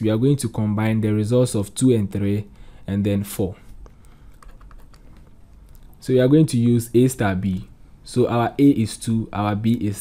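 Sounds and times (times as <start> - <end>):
stylus tapping on pen tablet: 3.8 - 5.4.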